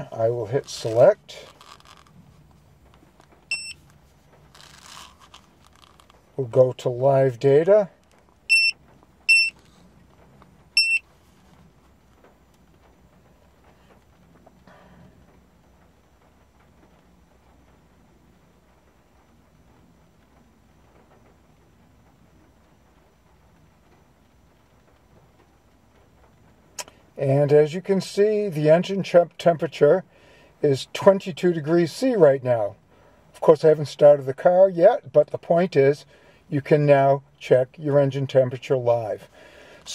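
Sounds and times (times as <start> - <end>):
high-pitched key-press beeps: 3.5 - 3.8, 8.5 - 9.6, 10.8 - 11.0
small click: 26.8 - 27.0.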